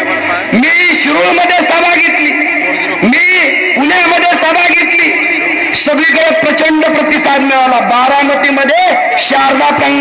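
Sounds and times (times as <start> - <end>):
man speaking over public address: 0.0 - 10.0.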